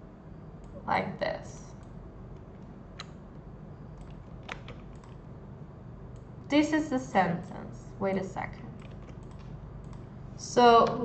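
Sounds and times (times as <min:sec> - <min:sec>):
faint low hum: 0:00.0 - 0:11.0
computer keyboard clicks: 0:04.0 - 0:05.2, 0:08.8 - 0:10.1.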